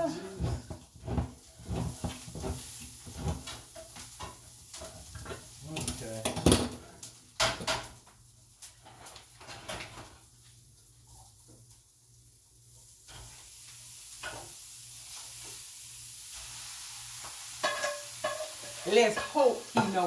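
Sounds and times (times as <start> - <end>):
metal utensil scraping frying pan: 0.0 - 6.8, 17.5 - 20.0.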